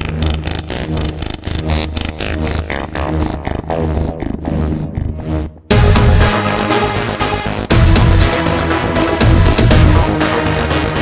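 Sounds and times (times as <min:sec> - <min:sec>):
electronic dance music: 0:00.0 - 0:11.0.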